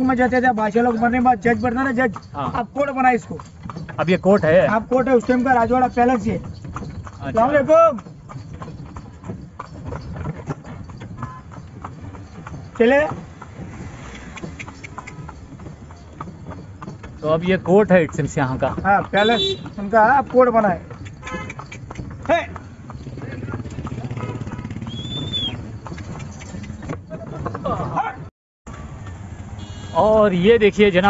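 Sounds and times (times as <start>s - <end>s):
horse hooves on pavement: 0.0s - 31.0s.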